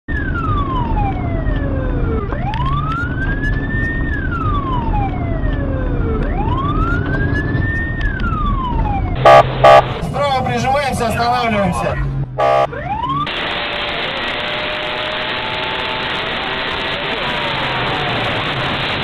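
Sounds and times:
car engine and road noise: 0.1 - 19.0
police siren wailing: 0.1 - 19.0
loud horn blasts: 9.2 - 10.0, 12.4 - 12.7.

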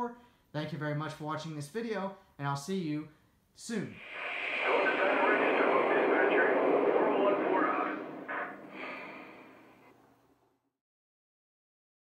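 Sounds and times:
hiss of steam: 4.0 - 9.6
faint radio-style voice: 4.0 - 9.8.

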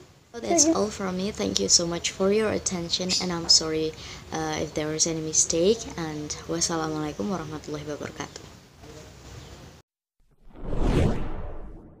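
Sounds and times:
whoosh sound effect: 10.4 - 12.0.

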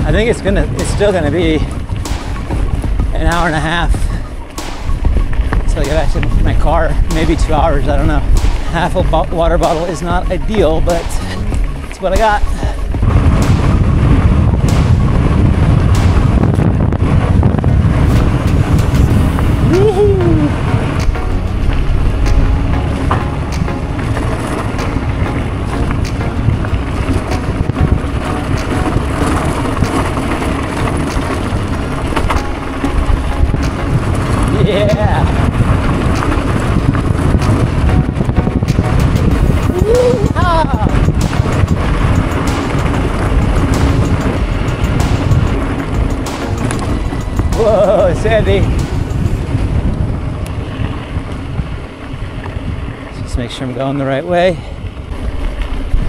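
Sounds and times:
bike rattles and clicks: 0.0 - 56.0
bike tyres on dirt road: 0.0 - 56.0
wind buffeting microphone: 0.0 - 56.0.

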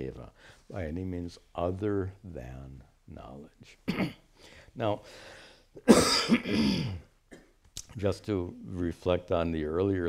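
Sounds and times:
man coughing: 3.9 - 4.3, 5.8 - 7.6.

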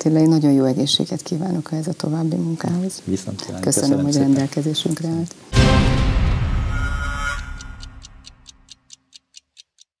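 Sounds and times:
closing theme music: 5.5 - 8.7
clock-like ticking effect: 5.6 - 10.0.

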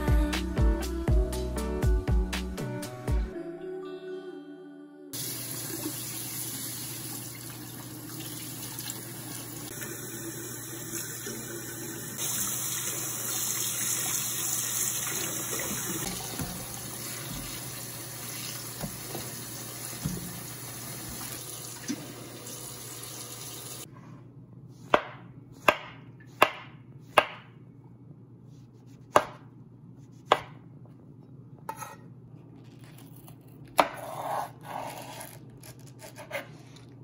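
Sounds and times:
tap water running into sink: 5.2 - 23.9.

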